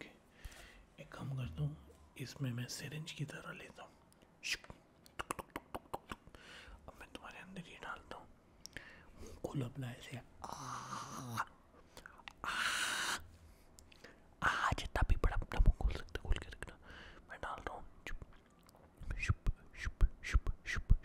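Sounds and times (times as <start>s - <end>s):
wet mouth clicks and smacks: 5.0s - 6.3s
breathy hiss: 12.4s - 14.1s.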